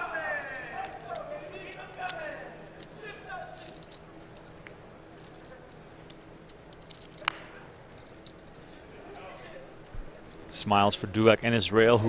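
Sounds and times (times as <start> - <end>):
steady background hum: 0.0 - 12.0
faint voices: 7.0 - 10.2.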